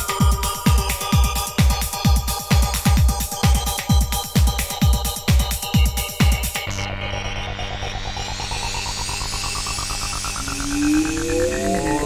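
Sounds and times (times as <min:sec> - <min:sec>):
fast pulsing synth line: 0:07.2 - 0:12.0
sliding synth tone: 0:09.8 - 0:12.0
low beat: 0:09.9 - 0:12.0.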